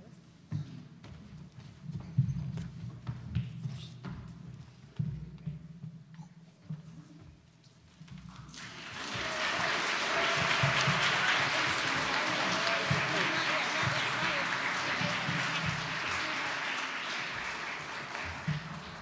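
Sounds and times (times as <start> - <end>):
audience applauding: 8.5 - 19.0
voices: 8.9 - 19.0.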